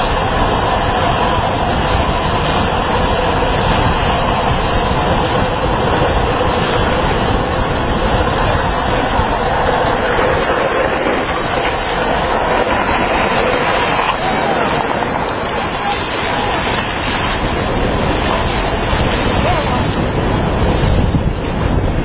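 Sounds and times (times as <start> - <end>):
small wheels rolling on asphalt: 0.0 - 22.0
wind rushing over microphone: 0.0 - 22.0.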